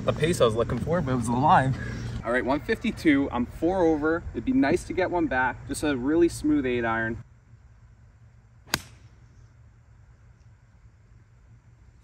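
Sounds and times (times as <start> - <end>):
golf club striking ball: 8.7 - 9.1.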